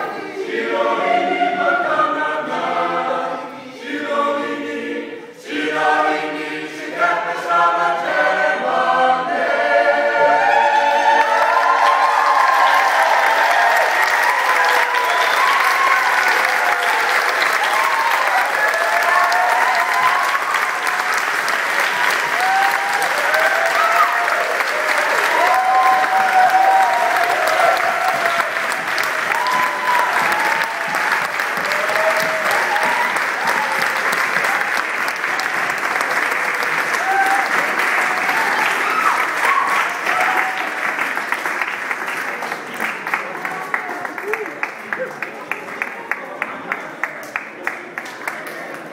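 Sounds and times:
crowd voices: 0.0s - 2.0s
audience clapping: 10.8s - 48.9s.

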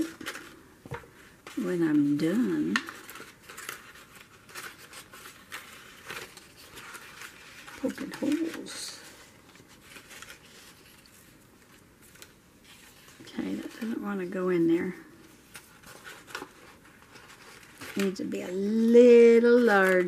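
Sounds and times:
paper rustling: 0.0s - 20.0s.

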